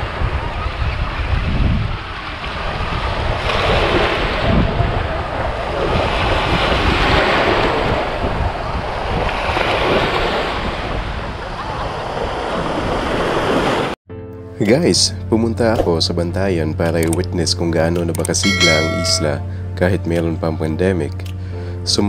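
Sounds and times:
waves washing on sand: 0.0s - 13.9s
wind rumbling on microphone: 0.0s - 13.9s.

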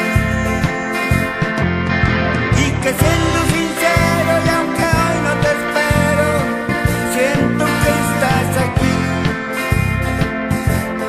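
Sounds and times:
gliding melody line: 0.0s - 6.4s
rock song with drums and bass: 0.0s - 11.0s.

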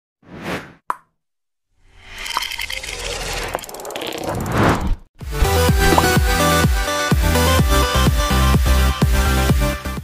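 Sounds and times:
music: 5.2s - 10.0s.

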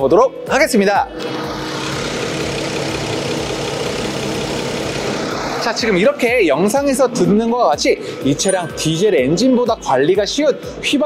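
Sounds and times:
car engine idling: 1.1s - 7.2s.

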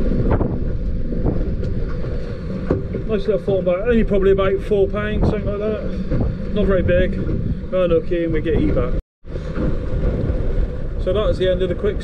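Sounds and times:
choppy water around a boat: 0.0s - 12.0s
wind on microphone: 0.0s - 12.0s.

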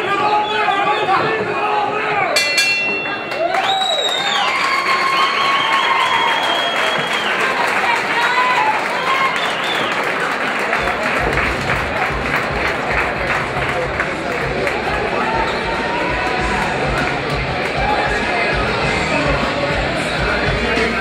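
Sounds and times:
crowd cheering and shouting: 0.0s - 21.0s
crowd applauding: 3.0s - 21.0s
music with thumping bass beat: 11.2s - 21.0s.

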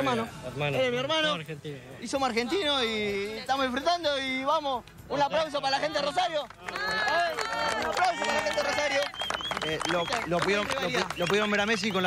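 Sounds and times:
hands clapping: 6.1s - 12.0s
fans cheering with held shouts: 6.7s - 11.1s.

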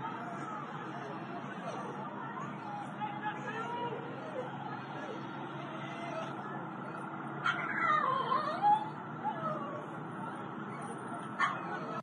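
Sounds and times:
high wailing cry: 0.0s - 12.0s
outdoor background noise: 0.0s - 12.0s.

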